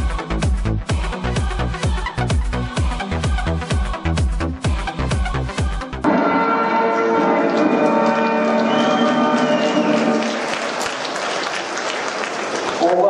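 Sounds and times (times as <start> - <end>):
music playing: 0.0 - 11.1
applause: 7.2 - 13.0.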